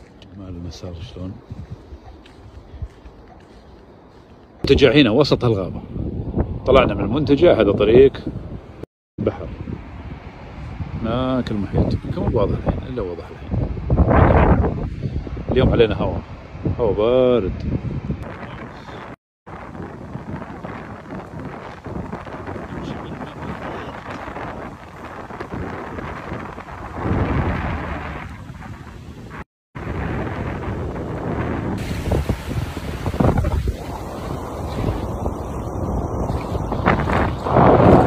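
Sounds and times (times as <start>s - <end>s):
wind buffeting microphone: 0.0s - 38.0s
ocean surf: 19.5s - 38.0s.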